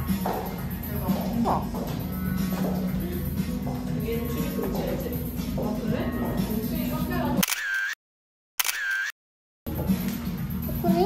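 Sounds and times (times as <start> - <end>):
background music: 0.0 - 7.4, 9.7 - 11.0
camera shutter sound effect: 7.4 - 8.0, 8.6 - 9.2.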